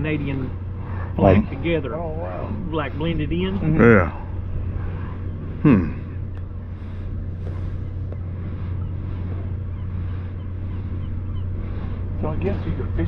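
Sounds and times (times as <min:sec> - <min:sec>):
faint outdoor background noise: 0:00.0 - 0:13.0
machinery humming: 0:00.0 - 0:13.0.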